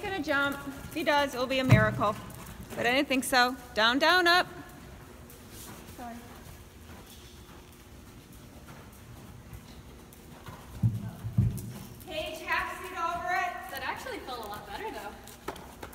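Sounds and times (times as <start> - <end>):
horse moving on sand: 0.0 - 15.9.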